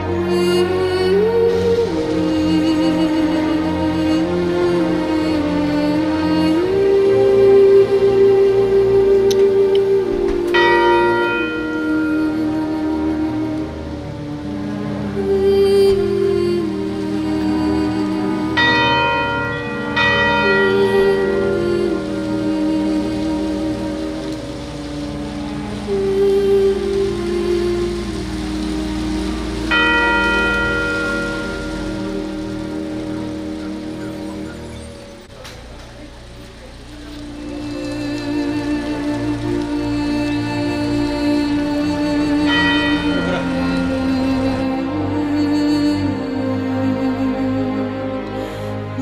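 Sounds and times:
rain falling on wet ground: 0:00.0 - 0:49.0
slow background music: 0:00.0 - 0:49.0
church bell ringing: 0:10.1 - 0:14.6, 0:17.0 - 0:39.7, 0:40.7 - 0:46.7.

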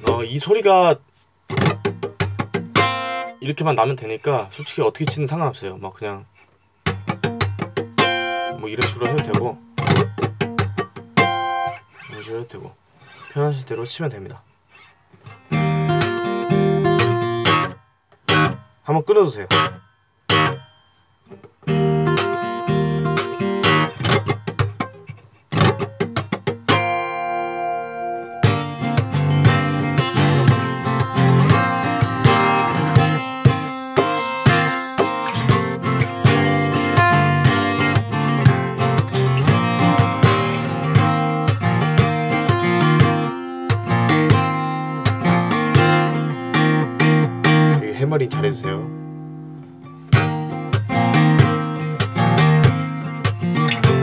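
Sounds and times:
fingerstyle acoustic guitar: 0:00.0 - 0:54.0
percussive slaps on guitar strings: 0:01.5 - 0:03.0, 0:06.8 - 0:08.2, 0:08.8 - 0:11.5, 0:16.9 - 0:18.7, 0:23.1 - 0:27.0, 0:28.4 - 0:46.2, 0:49.6 - 0:54.0.

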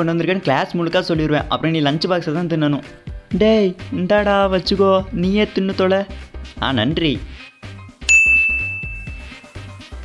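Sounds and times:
background music with bass beat: 0:00.1 - 0:10.0
bright ding sound effect: 0:08.1 - 0:09.8.

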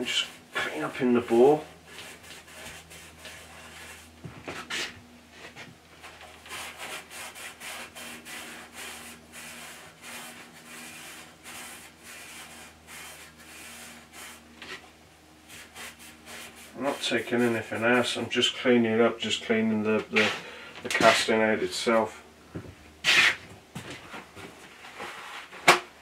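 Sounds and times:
scratch pad scrubbing metal: 0:06.5 - 0:14.8.

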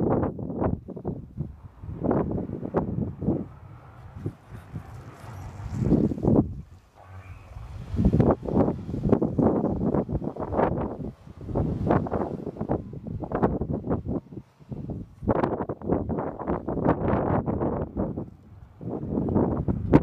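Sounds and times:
car engine under load: 0:00.0 - 0:20.0
wind buffeting microphone: 0:00.0 - 0:20.0
wheels throwing up snow: 0:04.0 - 0:12.8.

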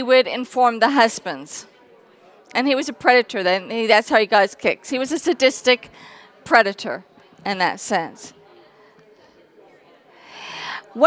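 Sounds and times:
person breathing in on microphone: 0:10.1 - 0:11.0.

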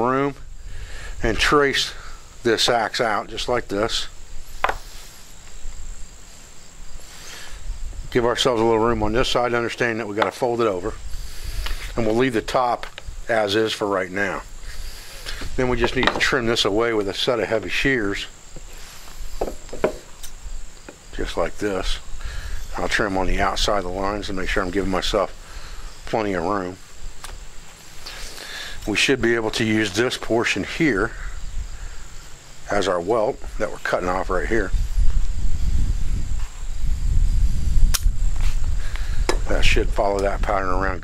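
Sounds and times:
high insect trill: 0:00.0 - 0:41.0
light knocks and rustles: 0:15.3 - 0:16.4, 0:18.5 - 0:20.2.

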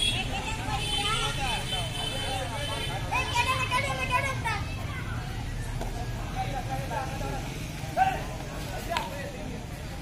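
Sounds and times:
boys calling out: 0:02.9 - 0:05.3.

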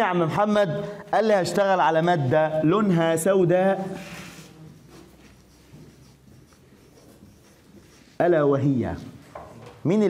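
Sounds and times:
marker scratching on whiteboard: 0:01.2 - 0:10.0.

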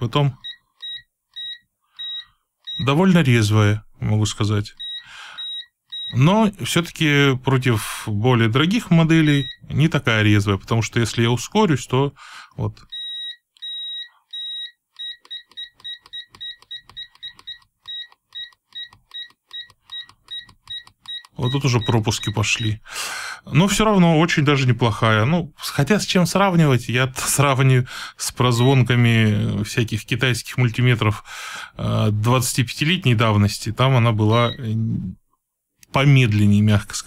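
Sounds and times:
multimeter short high beeps: 0:00.4 - 0:03.0, 0:04.8 - 0:06.2, 0:09.2 - 0:09.6, 0:12.9 - 0:22.7, 0:34.3 - 0:34.7.

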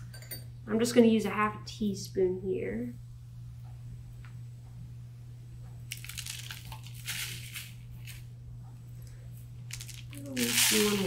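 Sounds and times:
low electrical hum: 0:00.0 - 0:11.0
salt pouring into spoon: 0:09.8 - 0:11.0.

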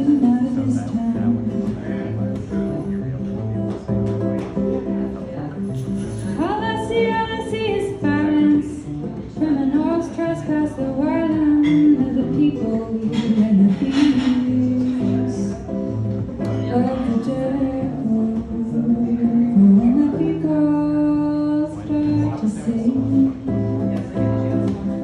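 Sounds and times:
woman singing: 0:00.0 - 0:02.1, 0:06.3 - 0:15.8, 0:16.4 - 0:25.0
acoustic guitar strumming: 0:00.0 - 0:25.0.

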